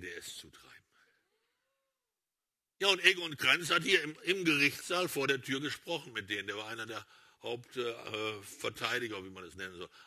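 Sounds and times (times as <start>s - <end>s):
man speaking: 0.0s - 0.9s, 2.8s - 10.0s.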